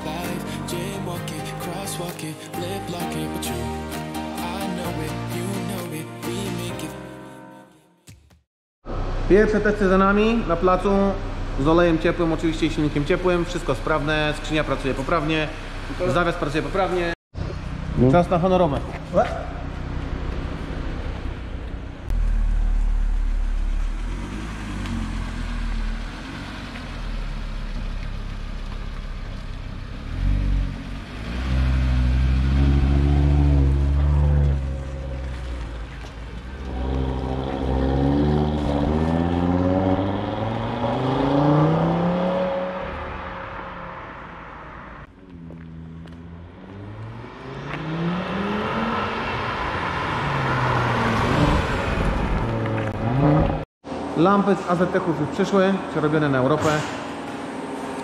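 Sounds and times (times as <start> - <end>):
car engine accelerating: 8.8 - 53.7.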